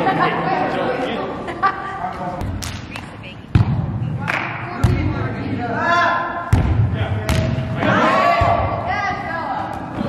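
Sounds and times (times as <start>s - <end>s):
volleyball being struck: 3.5s - 5.1s, 6.5s - 8.7s.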